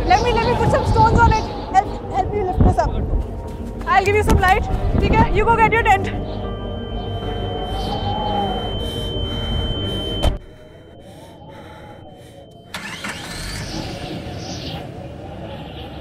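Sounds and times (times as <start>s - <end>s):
outside sound: 0.0s - 16.0s
car engine starting and running: 12.5s - 14.8s.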